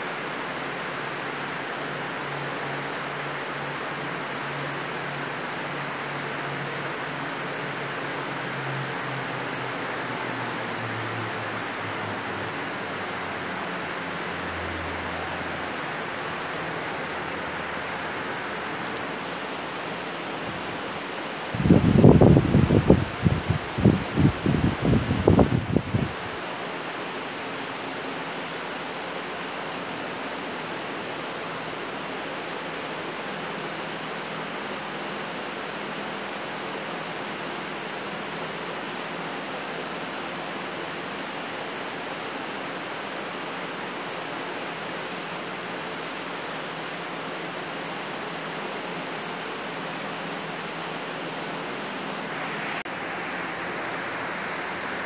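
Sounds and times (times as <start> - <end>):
steady hiss: 0.0 - 55.0.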